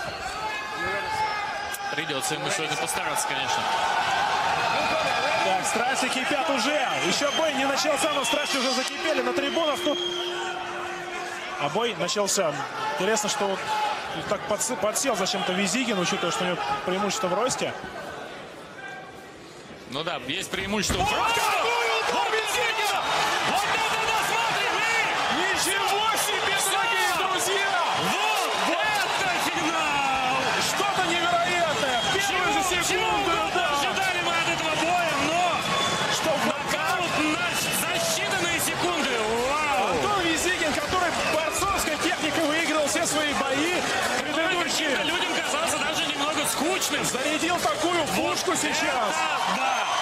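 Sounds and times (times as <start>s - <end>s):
crowd cheering and shouting: 0.0s - 19.2s, 20.6s - 50.0s.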